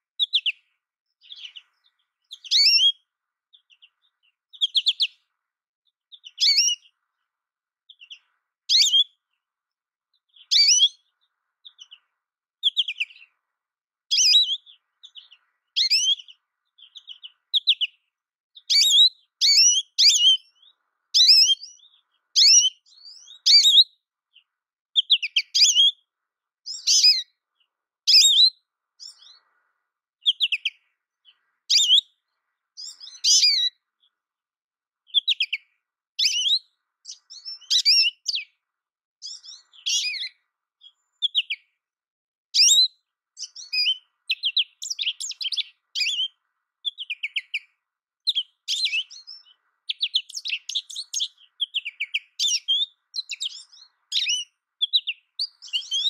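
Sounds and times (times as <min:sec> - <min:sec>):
bird chirping: 0:00.0 - 0:07.3, 0:07.9 - 0:09.5, 0:10.1 - 0:13.5, 0:14.1 - 0:34.2, 0:35.0 - 0:38.6, 0:39.2 - 0:41.8, 0:42.6 - 0:56.0.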